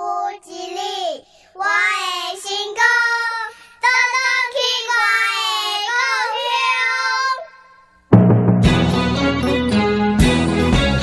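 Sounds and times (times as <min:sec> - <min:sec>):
child singing unaccompanied: 0:00.0 - 0:07.8.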